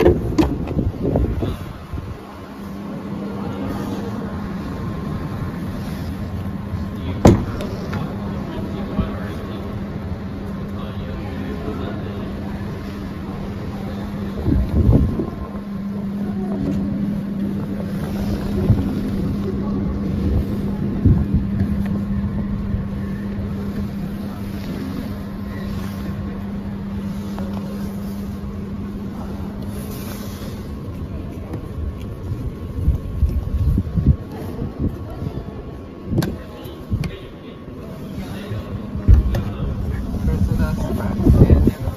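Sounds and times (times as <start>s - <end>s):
low mechanical hum: 0.0s - 41.9s.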